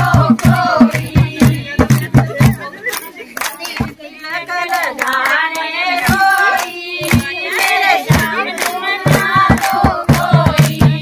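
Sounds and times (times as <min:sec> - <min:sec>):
hand clapping in time: 0:00.0 - 0:04.0, 0:04.7 - 0:11.0
women singing folk song: 0:00.0 - 0:11.0.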